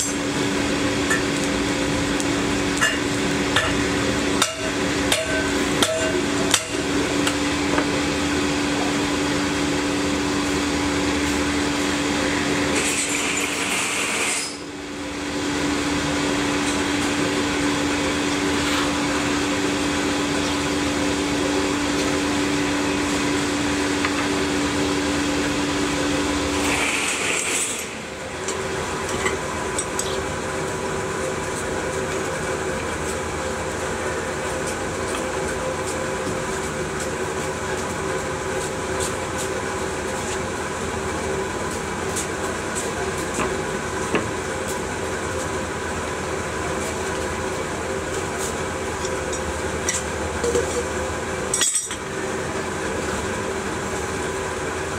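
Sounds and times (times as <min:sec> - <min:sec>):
furnace flame drone: 0:00.0 - 0:54.9.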